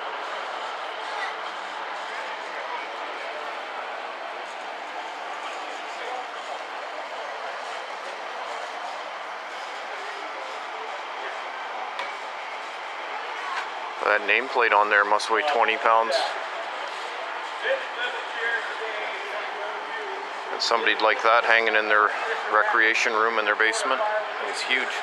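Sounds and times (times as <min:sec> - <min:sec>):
indistinct distant voices: 0:00.0 - 0:25.0.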